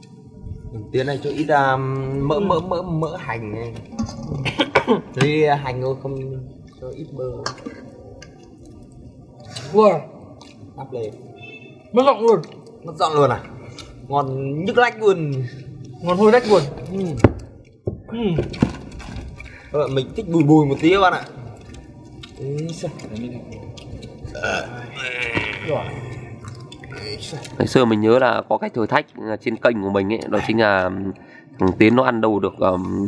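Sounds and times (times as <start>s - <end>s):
man burping: 4.0s - 5.1s, 24.3s - 26.3s.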